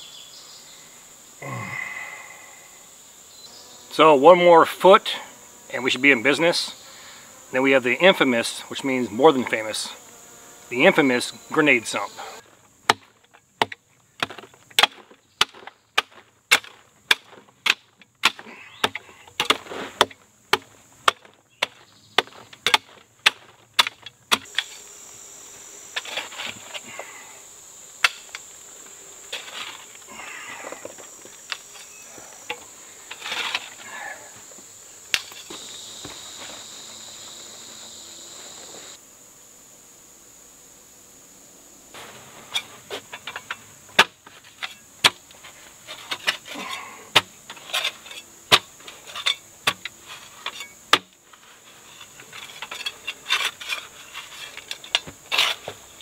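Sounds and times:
insects buzzing: 0.0 - 56.0
pick striking dirt: 12.8 - 24.9, 28.0 - 28.5, 35.1 - 37.6, 42.0 - 51.2
shovel scraping soil: 18.4 - 20.1, 22.4 - 25.0, 25.9 - 27.3, 29.2 - 34.4, 42.0 - 56.0.

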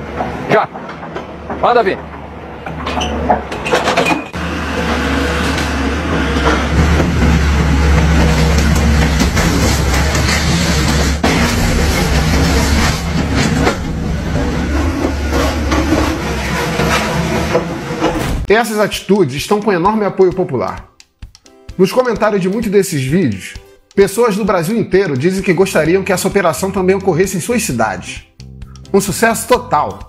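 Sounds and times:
excavator diesel engine running: 4.3 - 18.2.

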